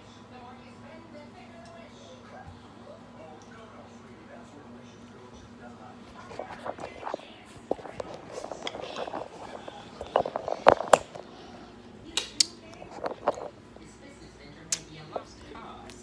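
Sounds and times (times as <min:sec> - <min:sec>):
fingers rubbing on phone: 0:06.1 - 0:11.4, 0:12.8 - 0:13.6.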